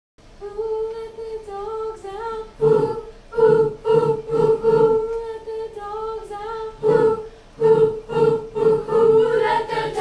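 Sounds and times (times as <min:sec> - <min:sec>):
school chorus singing: 0:02.6 - 0:05.1, 0:06.8 - 0:10.0.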